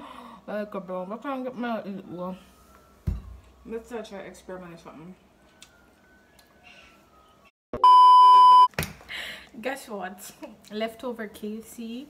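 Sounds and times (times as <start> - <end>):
high electronic beep: 7.8 - 8.7.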